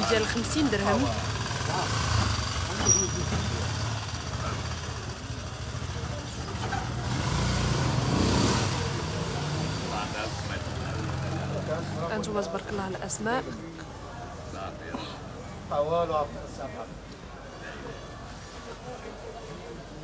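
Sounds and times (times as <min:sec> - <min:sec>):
people talking: 0:00.0 - 0:01.9.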